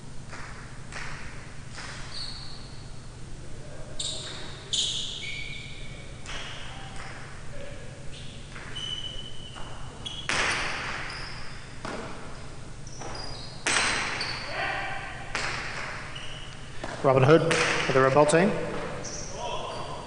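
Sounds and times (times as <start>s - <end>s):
ball cracking against court walls: 0.3s - 2.1s, 9.6s - 11.1s, 11.8s - 12.4s, 13.0s - 14.3s, 15.3s - 16.1s, 16.8s - 19.1s.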